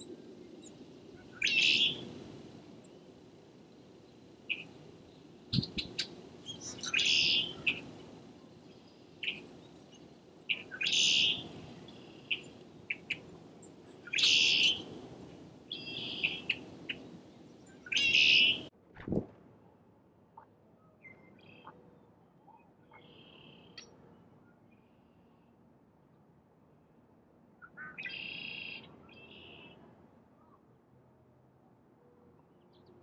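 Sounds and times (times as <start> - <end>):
bird calls: 0.0 - 2.1, 4.5 - 14.9, 15.7 - 18.7
bird chirps: 0.0 - 2.1, 4.5 - 14.9, 15.7 - 18.7.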